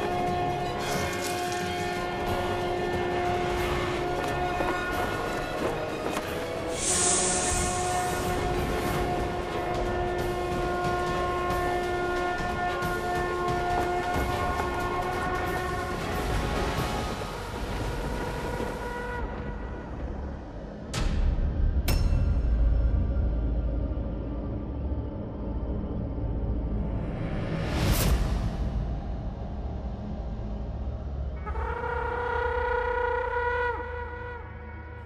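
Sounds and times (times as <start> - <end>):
dramatic music score: 0.0 - 35.0
deep rumble: 1.8 - 31.8
conch shell long note: 31.4 - 35.0.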